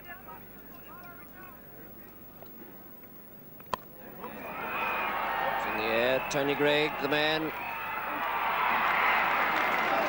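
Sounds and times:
crowd cheering: 4.0 - 10.0.

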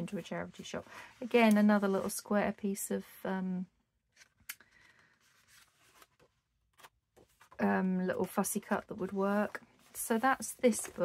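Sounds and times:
book pages turning: 4.1 - 11.0.

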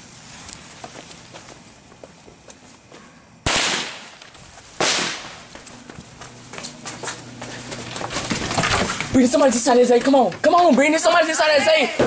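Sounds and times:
firecracker bangs: 3.4 - 4.2, 4.8 - 5.5.

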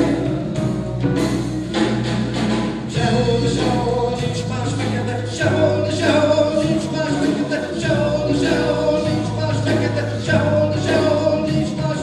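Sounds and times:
folk-rock band playing: 0.0 - 12.0
held low bass notes: 0.0 - 12.0.

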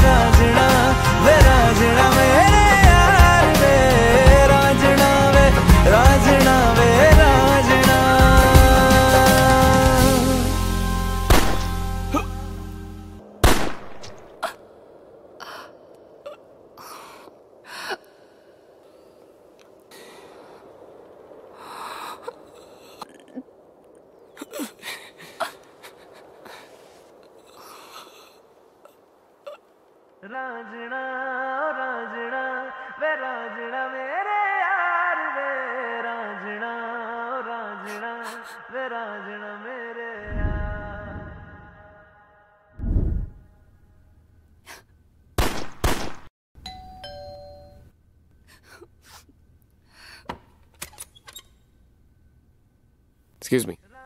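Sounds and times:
person gasping: 16.8 - 19.2, 21.6 - 23.4, 24.5 - 26.9, 27.5 - 28.4
two-note doorbell chime: 46.6 - 47.8.

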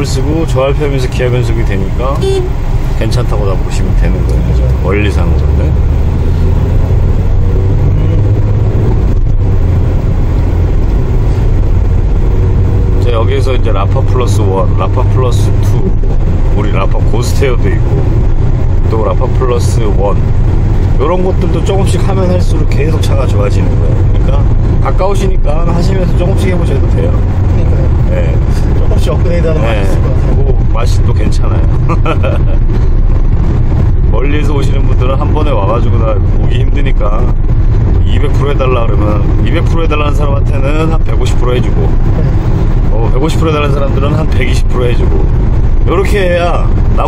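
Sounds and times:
person talking: 0.0 - 5.8
engine and road noise in cabin: 0.0 - 47.0.

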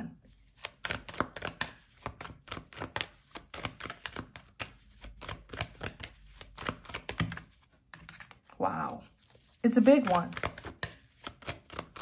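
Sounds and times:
cards being shuffled: 0.3 - 12.0.

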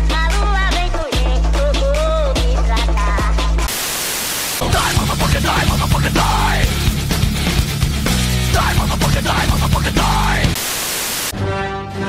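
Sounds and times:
white-noise static: 3.6 - 6.6, 8.6 - 11.4
song: 4.6 - 6.9
heavier music track: 4.6 - 12.0.

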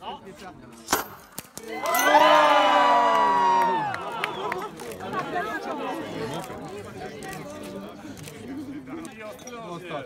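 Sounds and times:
crowd cheering: 1.6 - 6.4.

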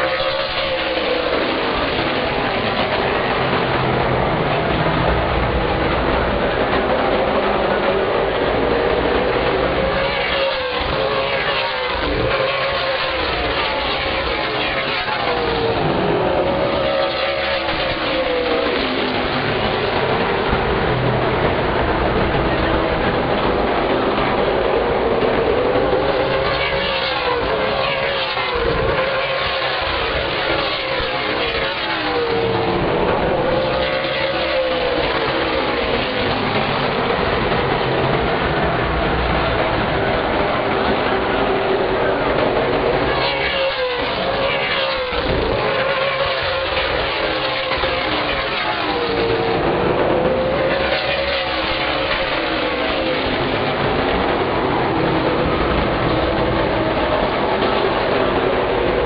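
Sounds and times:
race car engines passing: 0.0 - 59.0.

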